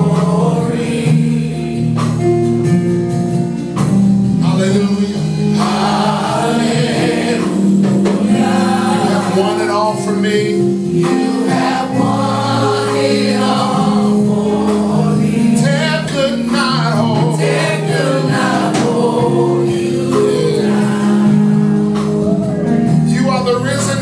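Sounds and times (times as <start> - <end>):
gospel choir singing: 0.0 - 2.8, 3.7 - 24.0.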